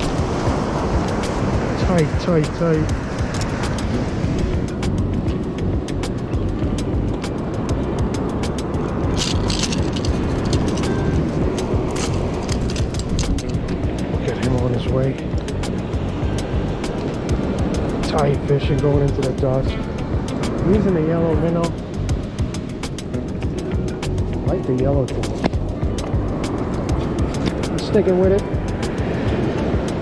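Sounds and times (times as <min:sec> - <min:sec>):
wind and surf rumble: 0:00.0 - 0:30.0
pliers and hooks clicking: 0:09.1 - 0:11.0, 0:11.9 - 0:13.6.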